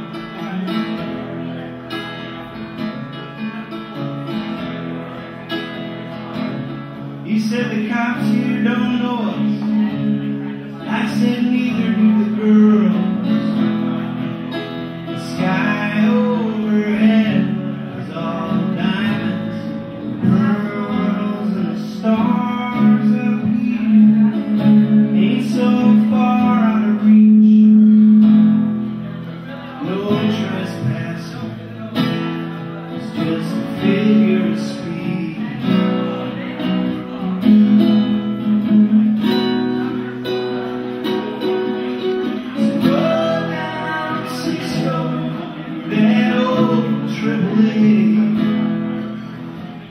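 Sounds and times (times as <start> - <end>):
acoustic guitar: 0.0 - 49.9
man singing: 7.1 - 49.9.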